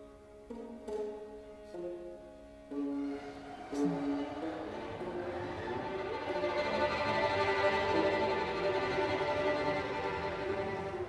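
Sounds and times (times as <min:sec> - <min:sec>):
bowed strings sustained notes: 0:00.0 - 0:11.0
chamber music ensemble: 0:00.0 - 0:11.0.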